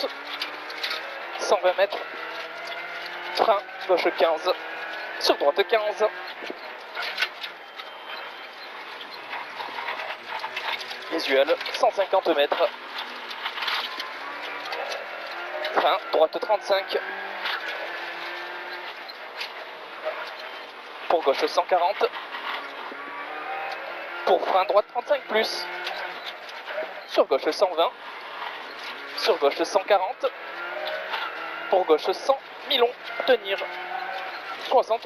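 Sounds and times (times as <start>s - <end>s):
rally car engine from cabin: 0.0s - 35.0s
road noise: 0.0s - 35.0s.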